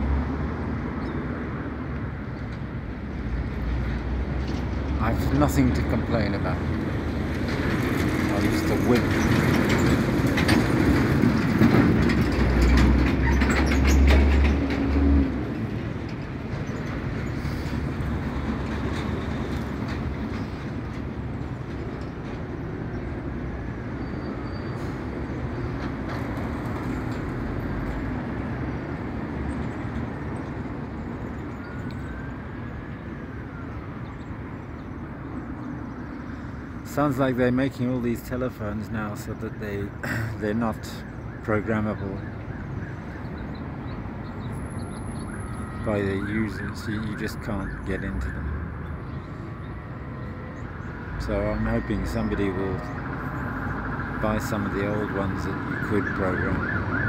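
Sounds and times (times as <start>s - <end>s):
heavy vehicle rumbling past: 0.0s - 34.1s.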